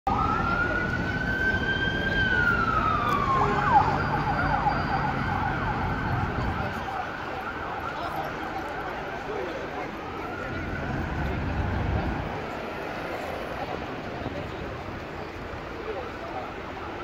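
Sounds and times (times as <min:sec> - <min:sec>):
emergency siren wail and yelp: 0:00.1 - 0:14.0
low traffic noise: 0:00.1 - 0:17.0.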